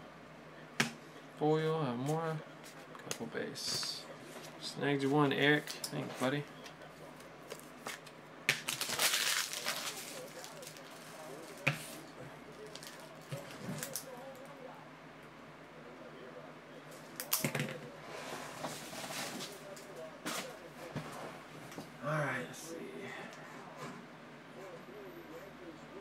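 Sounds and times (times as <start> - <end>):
foil wrappers crinkling: 7.5 - 14.1.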